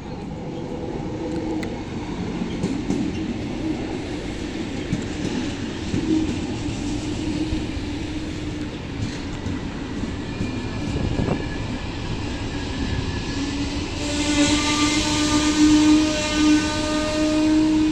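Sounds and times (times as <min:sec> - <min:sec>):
locomotive whine: 0:00.0 - 0:17.9
train rumbling past: 0:00.0 - 0:17.9.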